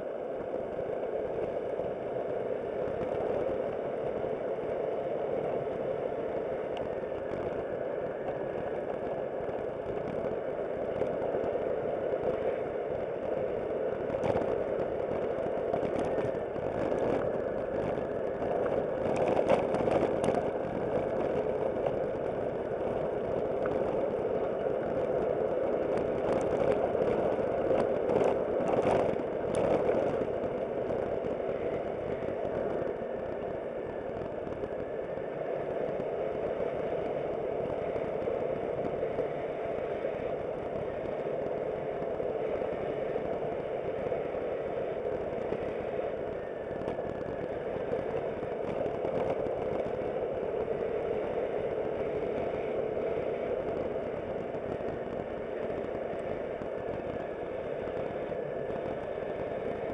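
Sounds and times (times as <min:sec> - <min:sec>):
road noise: 0:00.0 - 0:59.9
scooter engine drone: 0:00.0 - 0:59.9.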